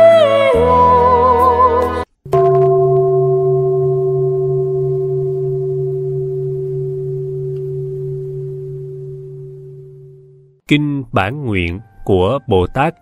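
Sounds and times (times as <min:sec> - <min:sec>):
bowl bell ringing: 0:02.3 - 0:10.6
low hum: 0:02.3 - 0:10.6.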